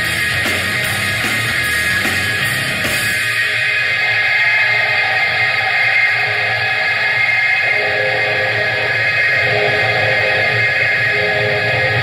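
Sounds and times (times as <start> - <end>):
live rock band: 0.0 - 3.8
electric guitar ringing chords: 0.0 - 4.0, 6.0 - 12.0.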